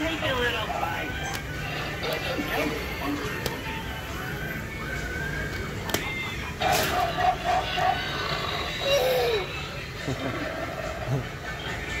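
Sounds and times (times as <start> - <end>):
hum of busy store: 0.0 - 12.0.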